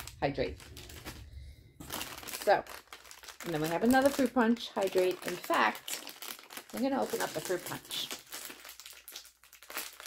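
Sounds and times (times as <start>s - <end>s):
plastic pouch crinkling: 0.0s - 10.0s.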